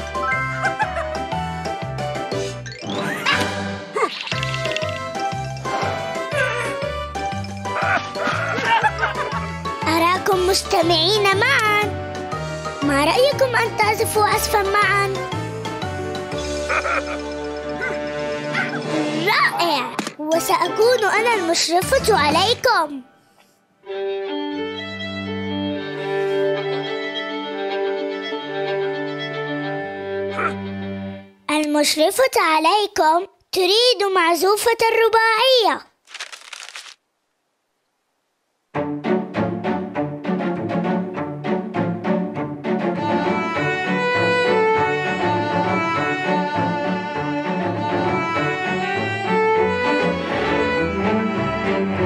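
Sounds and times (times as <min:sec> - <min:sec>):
string quartet playing: 0:23.9 - 0:30.3, 0:38.8 - 0:52.0.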